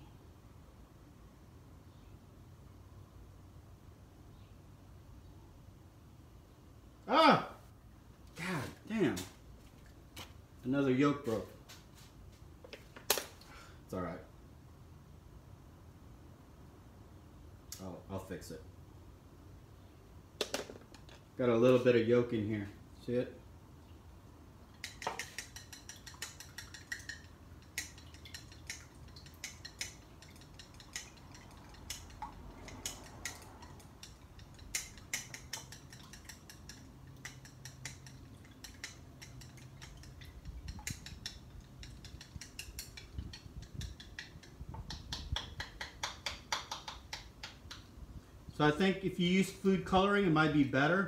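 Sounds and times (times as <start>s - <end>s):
chopsticks tapping against a bowl: 24.8s - 47.8s.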